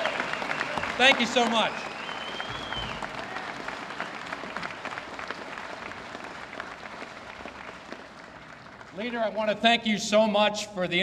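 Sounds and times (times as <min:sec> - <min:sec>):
audience applauding: 0:00.0 - 0:09.6.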